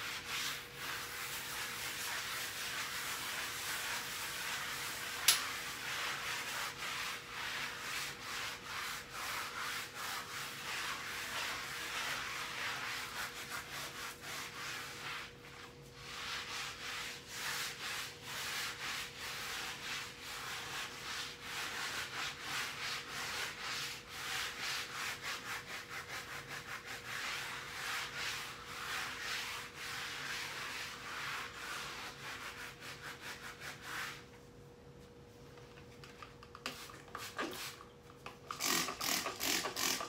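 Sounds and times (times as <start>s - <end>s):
sponge scrubbing a wall: 0.0s - 40.0s.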